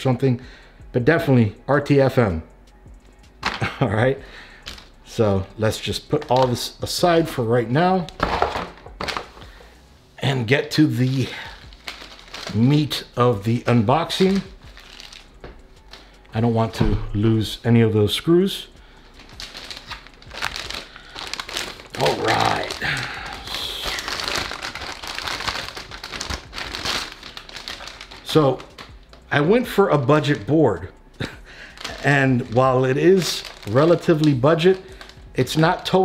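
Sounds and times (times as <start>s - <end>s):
plastic bag crinkling: 4.4s - 9.7s, 10.8s - 16.7s, 19.0s - 36.0s.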